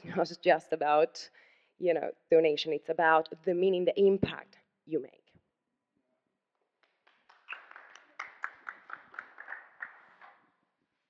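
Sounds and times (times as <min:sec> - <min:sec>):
audience applause: 0:07.3 - 0:10.4.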